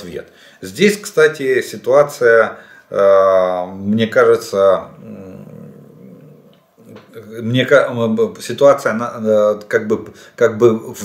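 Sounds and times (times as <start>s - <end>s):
man humming closed-mouth: 4.9s - 7.2s.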